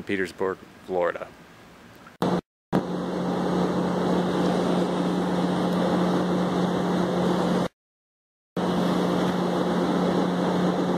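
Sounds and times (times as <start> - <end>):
boat motor running: 2.2 - 7.7, 8.6 - 10.9.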